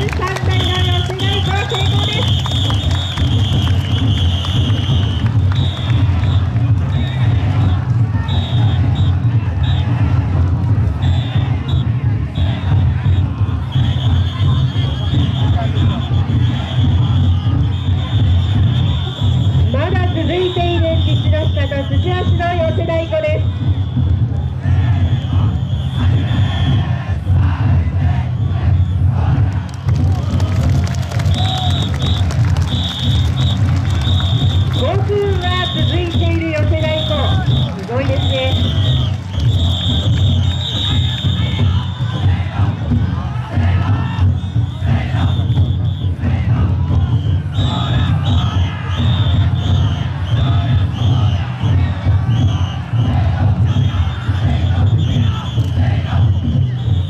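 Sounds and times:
heavy low drumming: 0.0 - 21.0, 22.0 - 57.0
crowd shouting and cheering: 0.0 - 57.0
high whistle blasts: 0.5 - 9.9, 11.0 - 22.4, 23.2 - 24.2, 24.9 - 26.8, 31.3 - 42.2, 44.2 - 46.3, 46.9 - 57.0
short high whistle blasts: 2.0 - 6.4, 31.3 - 34.9, 36.9 - 42.0.

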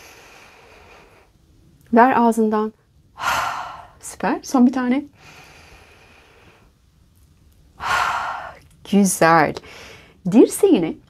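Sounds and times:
woman inhaling: 3.2 - 4.0, 5.2 - 6.8, 7.8 - 8.6, 9.6 - 10.2
woman exhaling through mouth: 7.8 - 8.6.

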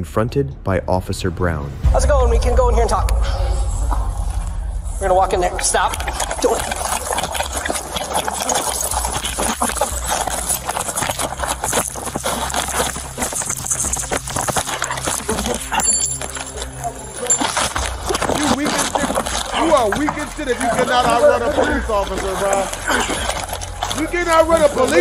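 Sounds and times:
clothing and gear rustling on microphone: 6.0 - 25.0.

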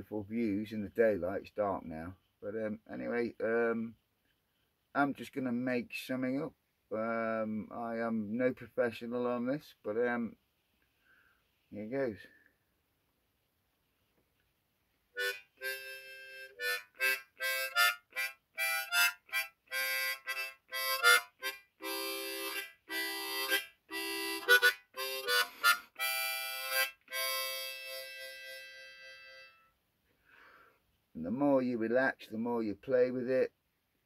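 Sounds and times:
harmonica playing: 15.2 - 29.8.

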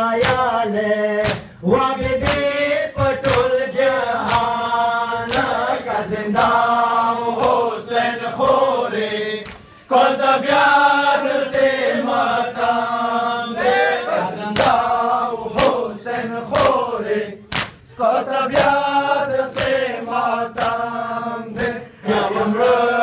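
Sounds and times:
men chanting a lament: 0.0 - 23.0.

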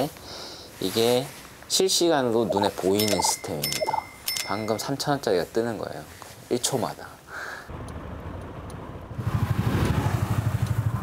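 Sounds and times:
brief high tone: 2.4 - 4.8.

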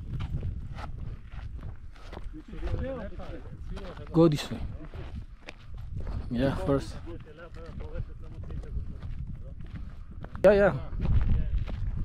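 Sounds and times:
footsteps on lava crust: 0.0 - 12.0.

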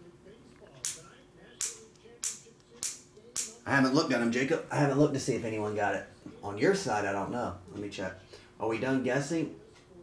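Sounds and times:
sharp snaps: 1.6 - 3.6.

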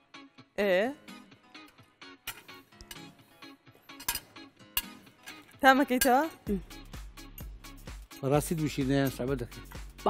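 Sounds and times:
quiet plucked background music: 0.1 - 10.0
fork clinking against a plate: 2.3 - 3.2, 3.9 - 6.4.

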